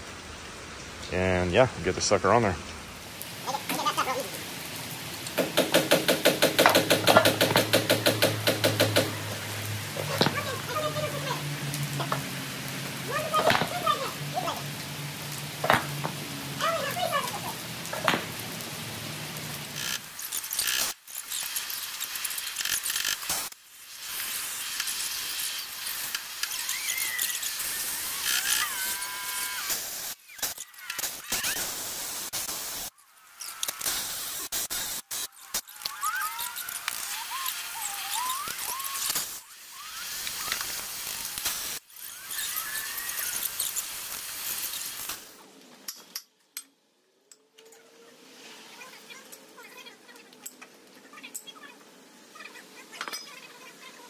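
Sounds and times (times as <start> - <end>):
cordless impact wrench: 5.4 - 9.1
short squeals: 26.5 - 31.7, 35.2 - 40.6, 41.9 - 43.9.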